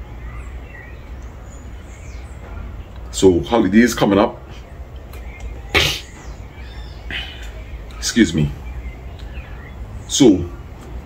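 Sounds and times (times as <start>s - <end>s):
man sneezing: 5.7s - 6.1s.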